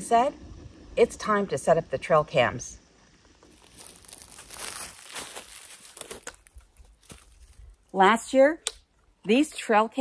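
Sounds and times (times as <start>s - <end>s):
rustling and crinkling: 3.1s - 8.0s.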